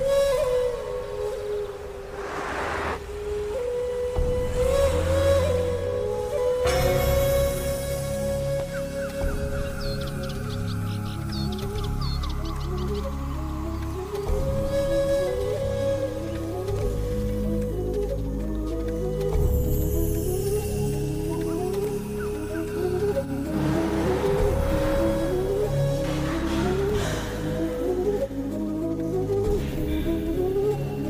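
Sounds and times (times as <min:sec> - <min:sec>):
slow background music: 0:00.0 - 0:31.0
rushing noise: 0:01.2 - 0:03.9, 0:23.2 - 0:27.4.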